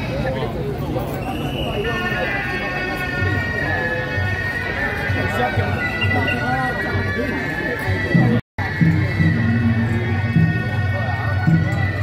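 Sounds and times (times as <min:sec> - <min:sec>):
shawm playing nasal melody: 0:01.2 - 0:12.0
low drum beats: 0:04.1 - 0:12.0.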